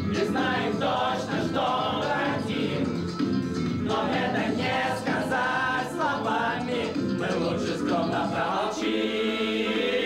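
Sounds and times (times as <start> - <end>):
men singing unaccompanied: 0.0 - 3.0, 3.8 - 10.0.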